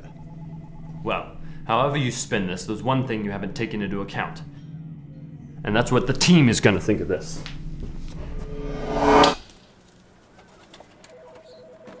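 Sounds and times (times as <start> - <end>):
held music chord: 0.0 - 9.4.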